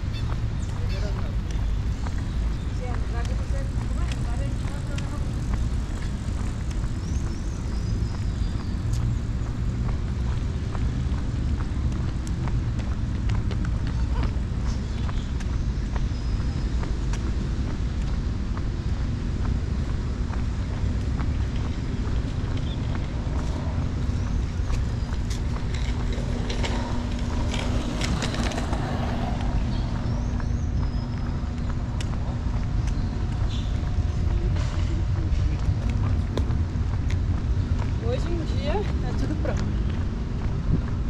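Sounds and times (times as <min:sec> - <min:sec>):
steady low rumble: 0:00.0 - 0:41.0
people's voices: 0:00.6 - 0:06.1.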